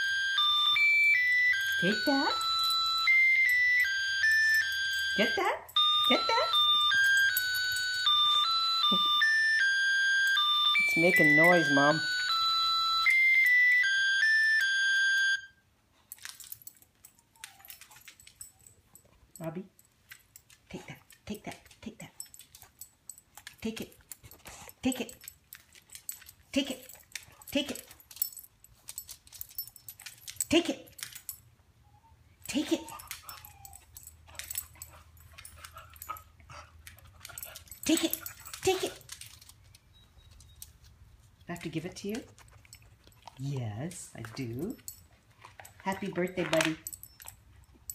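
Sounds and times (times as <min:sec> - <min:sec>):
dog whimpering: 0:31.8 - 0:34.2.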